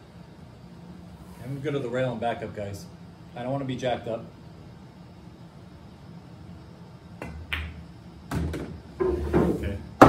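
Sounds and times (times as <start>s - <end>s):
pool balls clacking: 7.2s - 9.6s.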